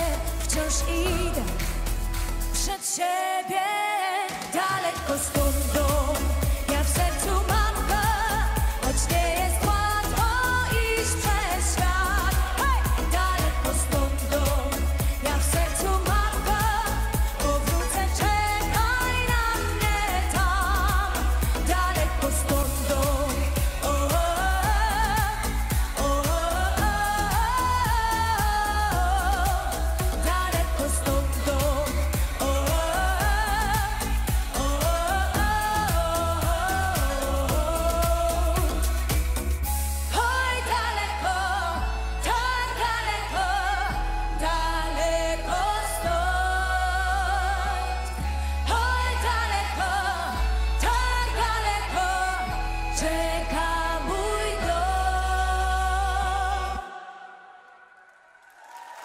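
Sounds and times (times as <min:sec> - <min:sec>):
steady beat and heavy bass: 0:00.0 - 0:02.7, 0:05.1 - 0:40.9
woman singing pop song: 0:00.0 - 0:58.0.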